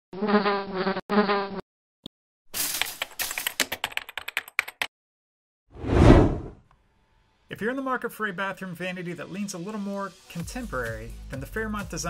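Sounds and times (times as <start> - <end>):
cartoon bee buzz: 0.2 - 1.6
whoosh: 5.8 - 6.6.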